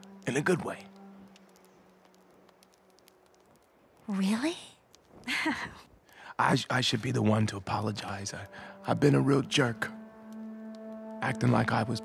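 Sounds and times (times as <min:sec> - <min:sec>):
burning torch crackling: 0:00.0 - 0:12.0.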